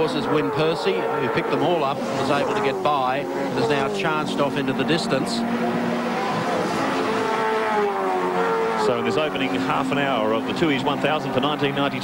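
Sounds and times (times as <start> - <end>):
racing car engines passing: 0.0 - 12.0.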